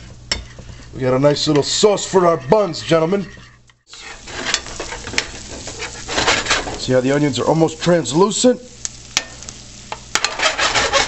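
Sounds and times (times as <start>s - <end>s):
metal spoon scraping a pan: 0.0s - 6.9s, 9.2s - 11.0s
bacon and onions sizzling in a pan: 3.8s - 11.0s.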